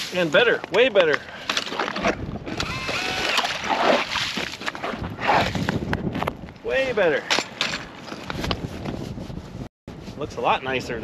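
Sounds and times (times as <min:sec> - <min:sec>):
auger blade grinding ice: 0:01.6 - 0:05.8
drill motor under load: 0:02.5 - 0:03.5.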